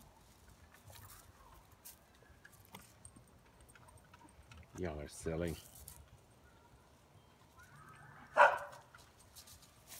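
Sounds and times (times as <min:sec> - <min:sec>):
dog bark: 0:08.3 - 0:08.9.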